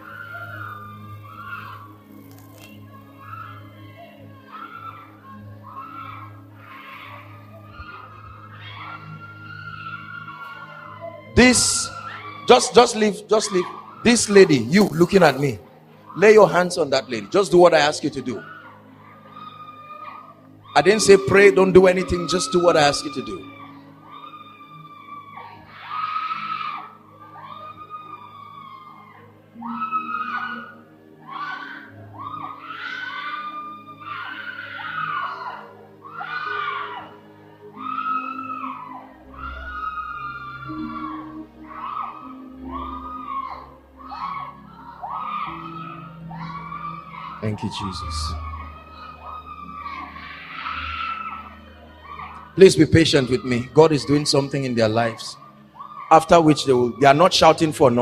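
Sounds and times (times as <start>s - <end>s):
distant shouting and crying: 0.0s - 58.0s
people screaming: 0.0s - 58.0s
soft background music: 0.0s - 58.0s.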